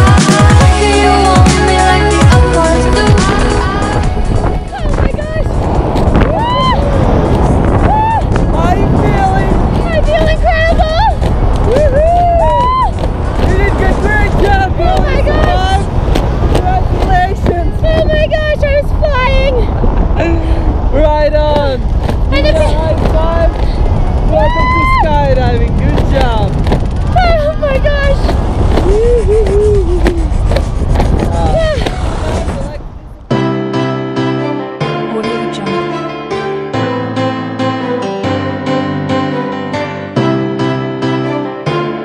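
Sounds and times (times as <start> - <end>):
pop song with singer: 0.0 - 5.6.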